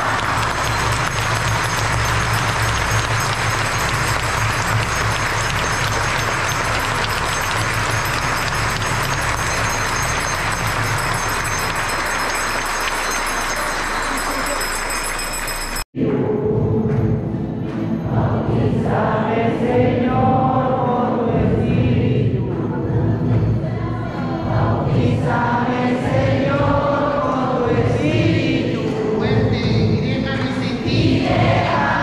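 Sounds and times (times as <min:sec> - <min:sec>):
congregation applauding: 0:00.0 - 0:15.9.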